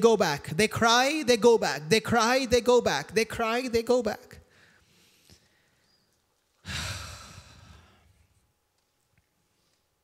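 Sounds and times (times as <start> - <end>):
man sighing: 6.6 - 8.1.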